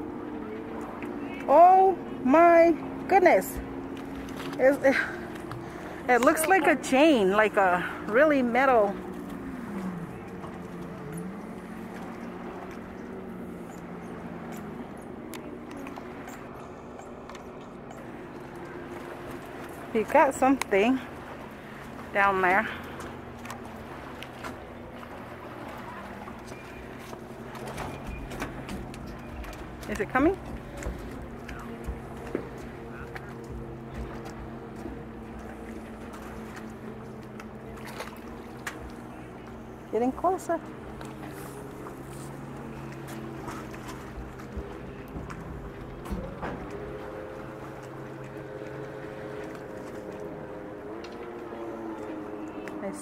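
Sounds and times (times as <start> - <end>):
boat motor humming: 0.0 - 53.0.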